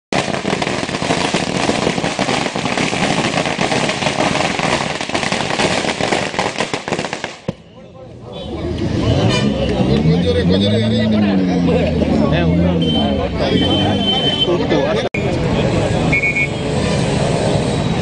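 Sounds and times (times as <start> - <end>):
firecrackers popping: 0.1 - 7.8.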